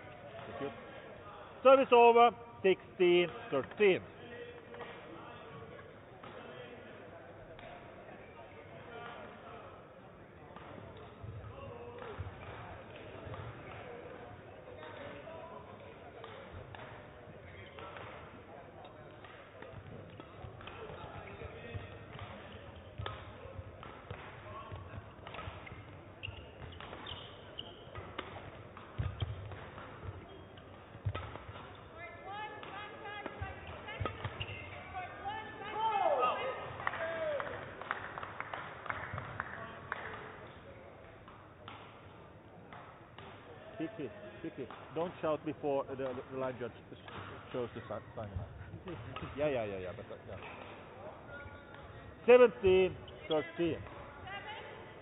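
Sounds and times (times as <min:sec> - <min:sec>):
rackets hitting shuttlecock: 0:10.6 - 0:13.9, 0:15.8 - 0:35.1, 0:47.0 - 0:47.6
shoe squeaks: 0:25.6 - 0:28.1, 0:30.1 - 0:30.8, 0:33.6 - 0:35.0, 0:53.0 - 0:53.6.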